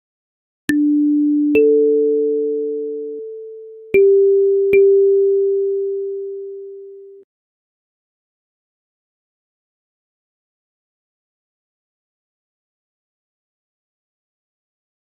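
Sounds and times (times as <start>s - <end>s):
kalimba plucked notes: 0.7s - 7.2s.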